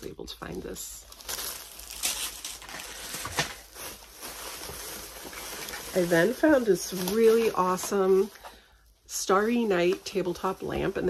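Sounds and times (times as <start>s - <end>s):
plastic packaging crinkling: 0.0s - 11.0s.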